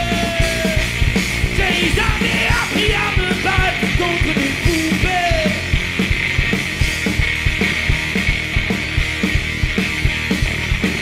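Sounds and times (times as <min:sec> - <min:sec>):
bass guitar: 0:00.0 - 0:11.0
distorted electric guitars: 0:00.0 - 0:11.0
fast driving drums: 0:00.0 - 0:11.0.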